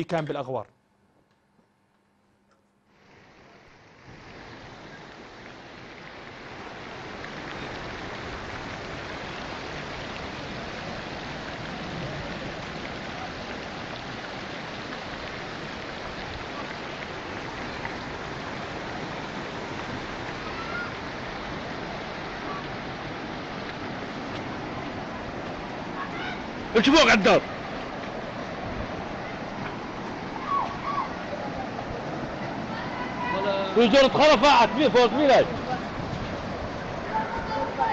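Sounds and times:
floodwater rushing: 2.9 - 37.9.

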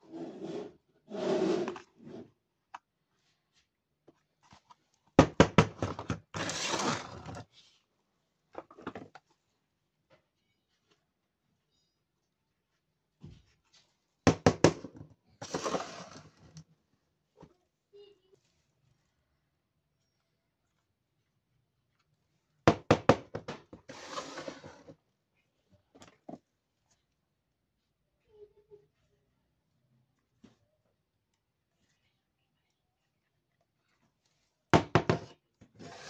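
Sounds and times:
plastic rubbing and scraping: 5.7 - 7.8, 15.4 - 16.5, 23.7 - 25.0, 35.1 - 36.0.

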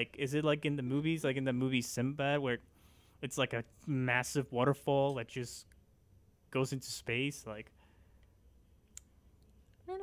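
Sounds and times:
person speaking: 0.0 - 2.6, 3.2 - 5.8
low steady hum: 0.0 - 10.0.

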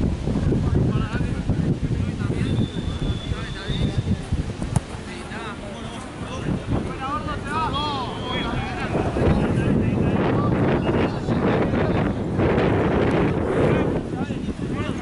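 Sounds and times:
wind buffeting microphone: 0.0 - 15.0
players shouting: 7.2 - 9.4.

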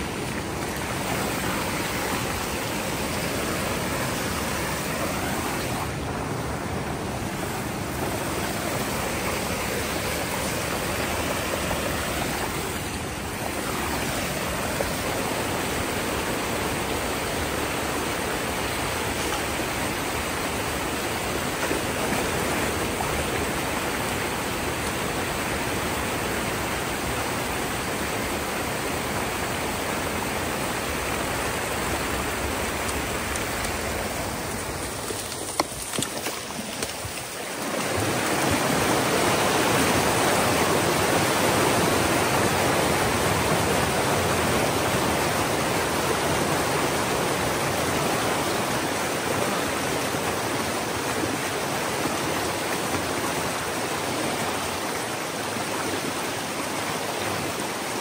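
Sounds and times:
water rushing and splashing down: 0.0 - 58.0.

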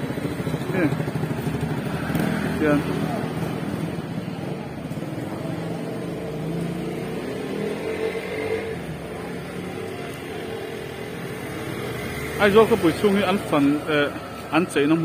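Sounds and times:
faint people's voices: 0.0 - 15.0
scooter and motorcycle engines: 0.0 - 15.0.

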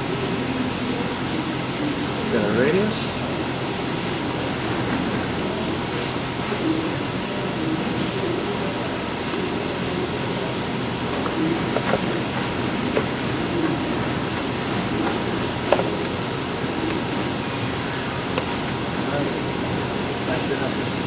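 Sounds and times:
angle roll machine running: 0.0 - 21.0.

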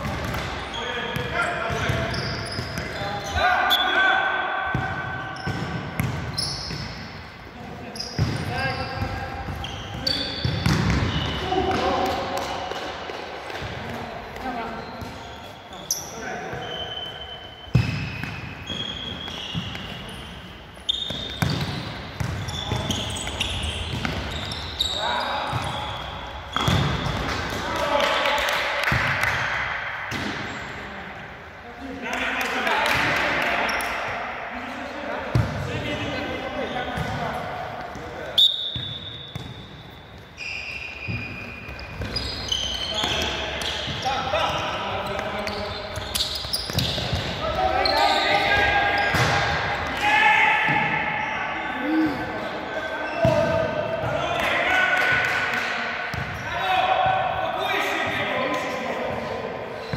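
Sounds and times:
shoe squeaks on court floor: 0.6 - 4.1, 6.3 - 7.0, 7.9 - 11.6, 14.5 - 27.2, 38.3 - 49.4.

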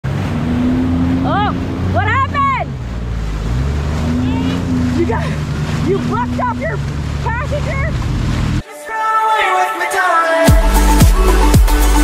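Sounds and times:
jet ski engine running: 0.0 - 8.6
voices calling out: 1.1 - 8.1.

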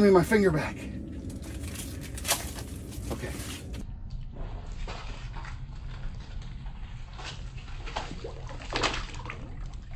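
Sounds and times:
rustling handling noise: 1.2 - 3.8.

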